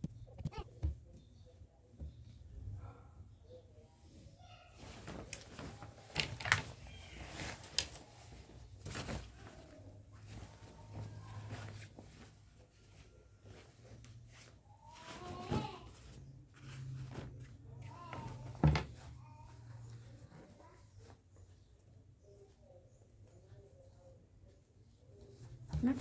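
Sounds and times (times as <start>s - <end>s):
cloth rustling: 4.7s - 21.5s.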